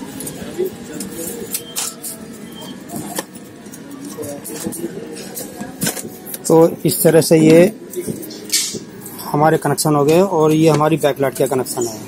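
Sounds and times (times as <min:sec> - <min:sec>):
faint distant voices: 0:00.0 - 0:12.0
street traffic: 0:00.0 - 0:12.0.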